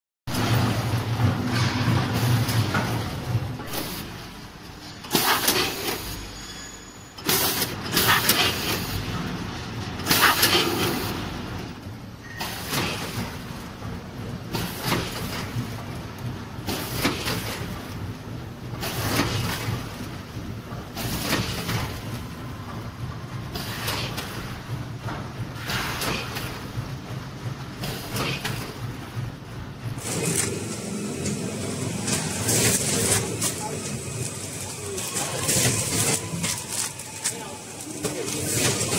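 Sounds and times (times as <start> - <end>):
steady machine hum: 7.6 - 38.9.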